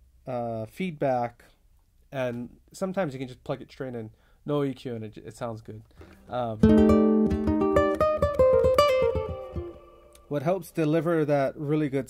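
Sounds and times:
fingerpicked electric ukulele notes: 0:06.6 - 0:10.3.

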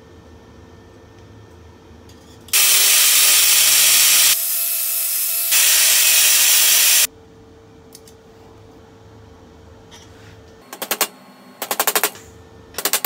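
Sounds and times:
loud rushing hiss: 0:02.6 - 0:07.1.

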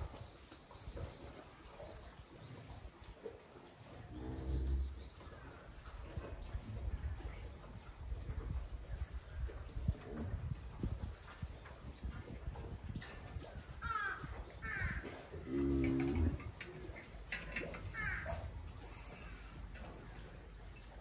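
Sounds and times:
cow moaning: 0:15.4 - 0:16.6
bird calling: 0:17.9 - 0:19.5.

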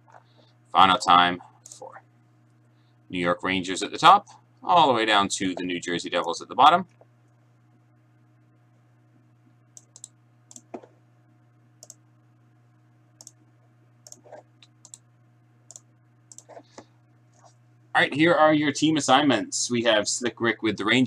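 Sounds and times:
faint low hum: 0:00.0 - 0:21.0
mouse and keyboard clicks: 0:14.1 - 0:15.0, 0:15.7 - 0:16.6.

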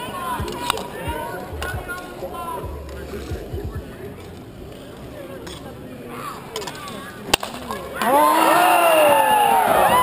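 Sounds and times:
crowd shouting and cheering: 0:00.0 - 0:04.0, 0:07.8 - 0:10.0.

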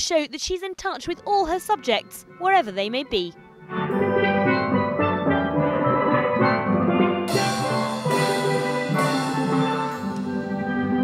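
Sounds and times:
steel pans ringing notes: 0:03.9 - 0:11.0.

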